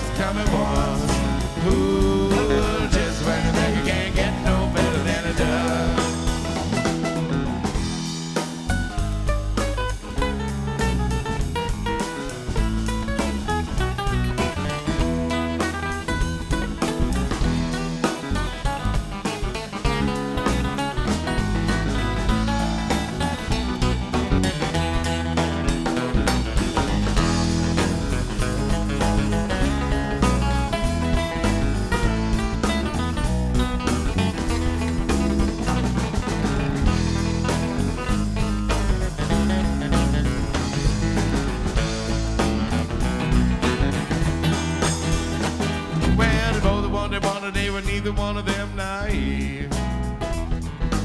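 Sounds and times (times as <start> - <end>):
live band playing instrumental: 0.0 - 51.0.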